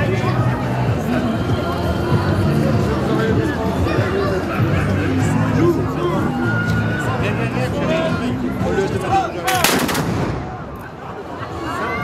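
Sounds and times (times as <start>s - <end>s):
musket volley: 9.5s - 10.9s.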